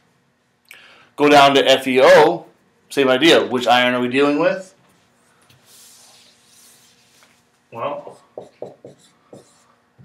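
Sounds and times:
marker writing on a whiteboard: 5.6 - 7.4, 8.0 - 9.7.

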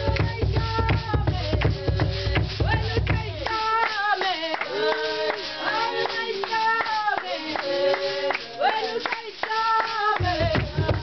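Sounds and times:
group singing together: 0.0 - 11.0
hand-clapping: 0.0 - 11.0.

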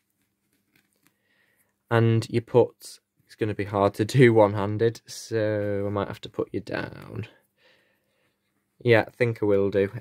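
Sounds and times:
man speaking: 1.9 - 7.4, 8.8 - 10.0.

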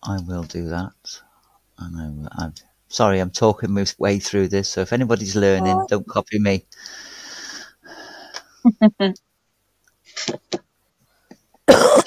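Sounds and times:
person laughing: 5.6 - 5.9
wheezy breaths: 6.8 - 8.6.

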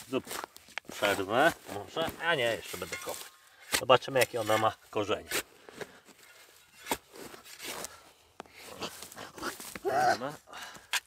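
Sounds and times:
spade digging into soil: 2.4 - 7.9.

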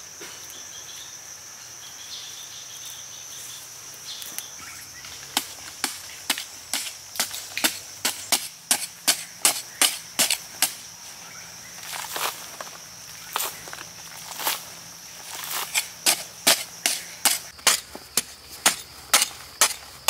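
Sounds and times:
high insect drone: 0.0 - 20.0
hoe chopping into hard dirt: 5.4 - 10.8, 15.6 - 19.9.

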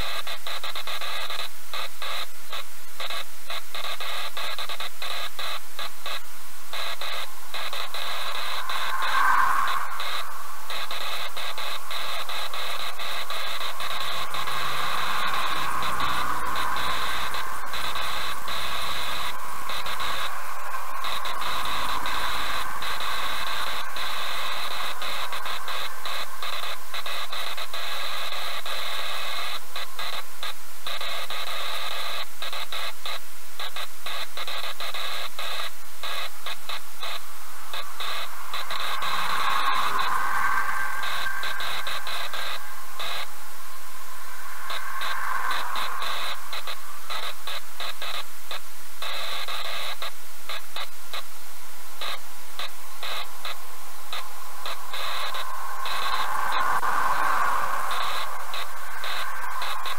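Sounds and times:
loud static-like hiss: 0.0 - 59.9
truck passing: 37.0 - 48.2, 53.1 - 59.9.

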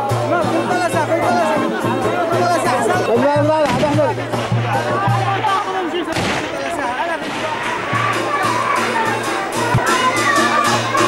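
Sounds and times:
crowd chatter: 0.0 - 11.0
drums: 0.0 - 11.0.

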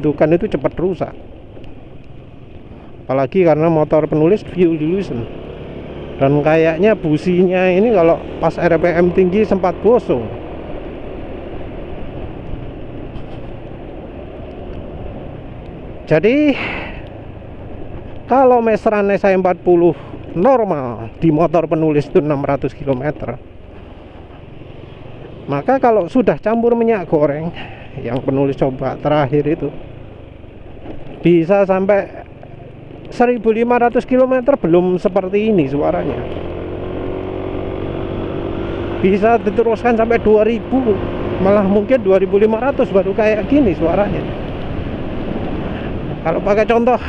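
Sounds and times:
road and wind noise: 0.0 - 47.0
scooter engine cruising: 0.0 - 47.0.

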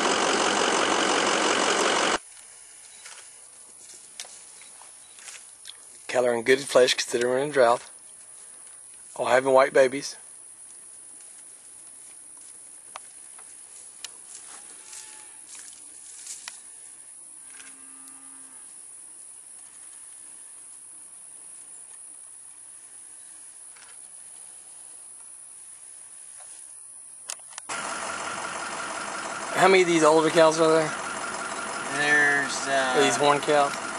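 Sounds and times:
vehicle engine starting: 0.0 - 2.2, 27.7 - 33.9
faint cow moo: 14.5 - 15.5, 17.5 - 18.8.

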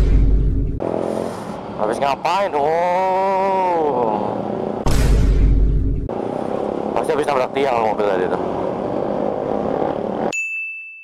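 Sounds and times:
road noise: 0.0 - 10.3
motorcycle engine: 5.4 - 10.3.

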